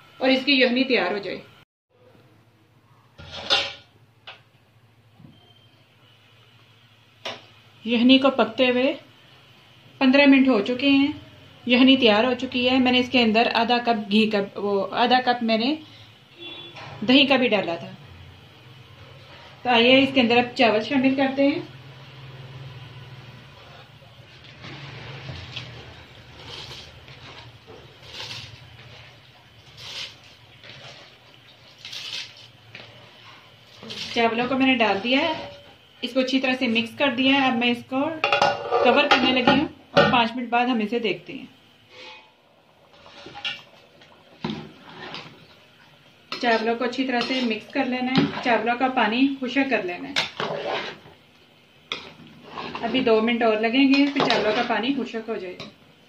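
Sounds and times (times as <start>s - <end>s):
pot lid metallic scrape: 3.2s - 3.9s, 38.3s - 39.0s, 41.9s - 43.6s, 50.2s - 51.1s, 51.9s - 53.2s, 53.9s - 54.8s.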